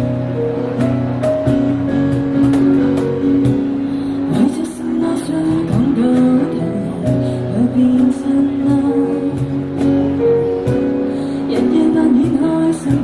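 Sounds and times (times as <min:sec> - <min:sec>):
cajon beats: 0:00.0 - 0:07.3
acoustic guitar chords: 0:00.0 - 0:13.0
keyboard chords: 0:00.0 - 0:13.0.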